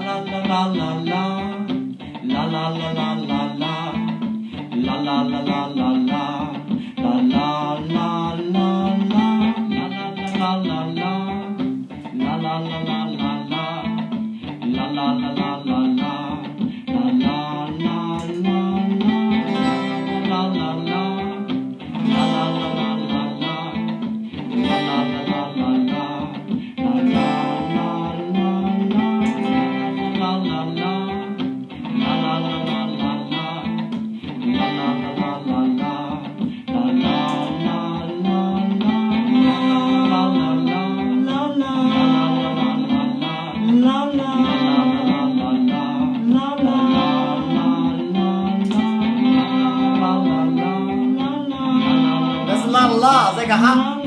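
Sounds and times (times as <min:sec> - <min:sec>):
looped guitar: 0:00.0 - 0:54.0
wordless vocal harmonies: 0:00.0 - 0:54.0.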